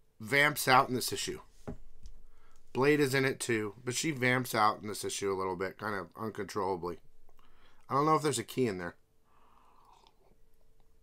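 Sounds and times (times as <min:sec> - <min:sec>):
slurp from a mug: 0:09.5 - 0:10.4.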